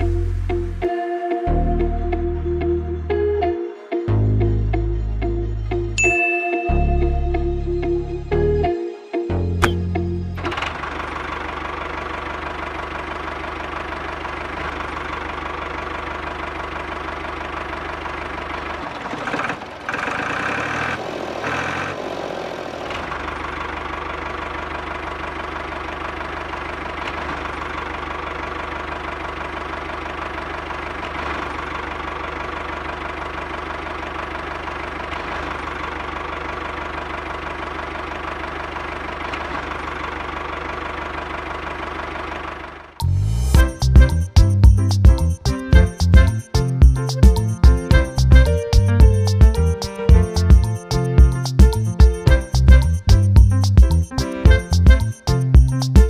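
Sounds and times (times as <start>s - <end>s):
diesel engine idling: 0.0s - 0.9s, 9.4s - 56.0s
engine clatter: 9.6s - 56.0s.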